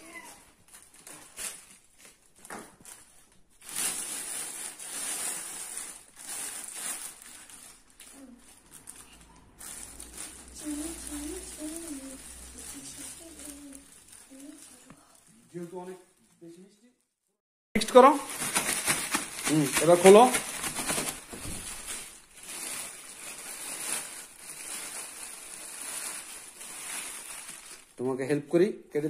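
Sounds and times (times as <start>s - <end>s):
plastic bag crinkling: 0.0s - 16.8s, 17.8s - 28.0s
person speaking: 19.4s - 20.5s.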